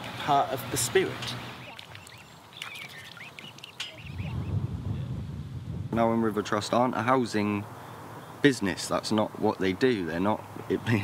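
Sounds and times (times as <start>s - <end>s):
cygnets peeping: 1.5s - 4.6s
low rumble: 4.2s - 6.0s.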